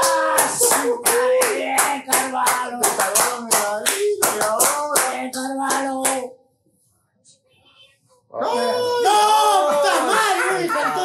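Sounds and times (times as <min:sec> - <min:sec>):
rhythmic hand clapping: 0:00.0 - 0:06.3.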